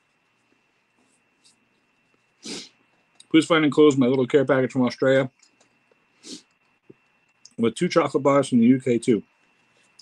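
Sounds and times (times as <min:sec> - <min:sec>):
sharp breath through the nose: 0:02.4 - 0:02.8, 0:06.2 - 0:06.5.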